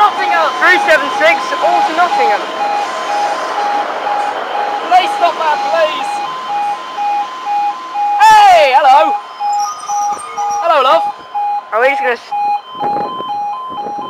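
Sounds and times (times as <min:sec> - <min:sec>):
level crossing alarm beeping: 0:00.0 - 0:14.0.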